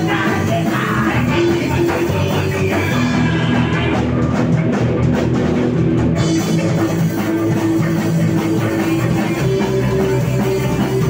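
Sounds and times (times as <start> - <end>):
drum kit beat: 0.0 - 11.0
electric guitar: 0.0 - 11.0.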